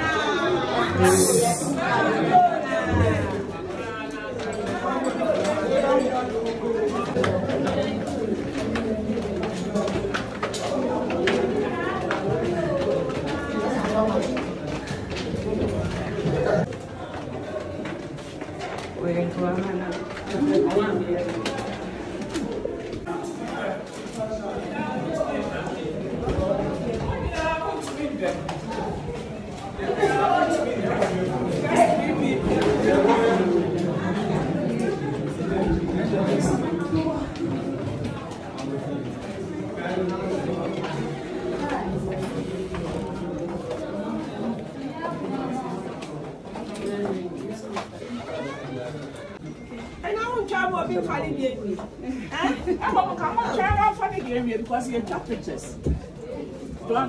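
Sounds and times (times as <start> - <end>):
group of people talking: 0.0 - 57.0.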